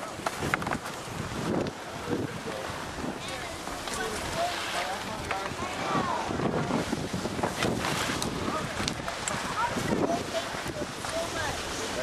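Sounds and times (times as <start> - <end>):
wind buffeting microphone: 0.0 - 12.0
faint voices: 1.8 - 7.2, 8.2 - 12.0.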